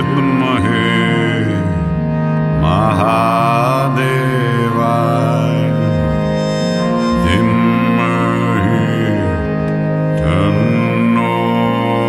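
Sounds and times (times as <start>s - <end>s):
harmonium drone: 0.0s - 12.0s
person chanting: 0.0s - 12.0s.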